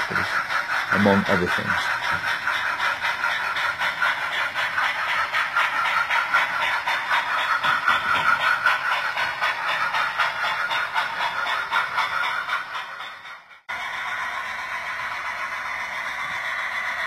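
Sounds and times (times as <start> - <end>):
model steam locomotive chuffing: 0.0 - 17.0.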